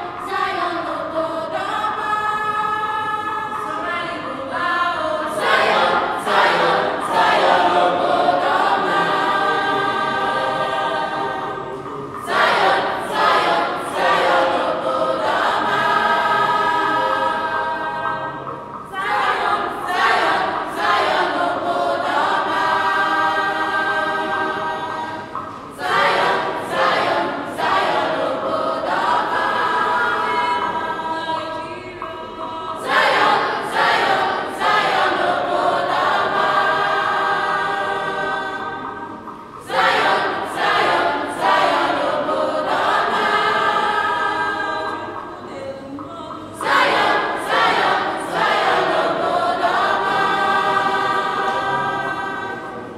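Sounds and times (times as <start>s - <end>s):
children's choir singing: 0.0s - 52.9s.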